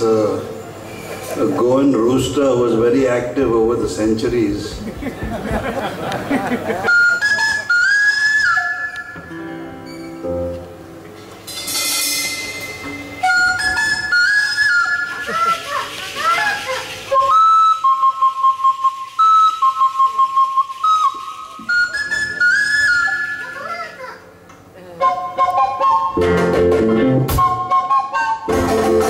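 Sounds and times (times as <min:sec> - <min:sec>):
band playing: 0:00.6 - 0:29.0
twin flutes playing melody: 0:06.6 - 0:10.5, 0:12.0 - 0:24.2, 0:24.8 - 0:29.0.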